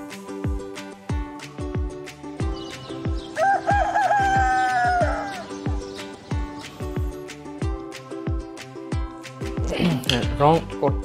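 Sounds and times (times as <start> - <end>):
background music with steady beat: 0.0 - 11.0
rooster crowing: 3.3 - 5.5.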